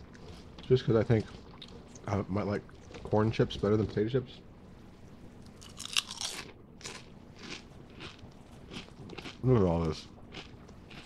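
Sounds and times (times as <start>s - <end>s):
potato chip crunching: 5.4s - 11.0s.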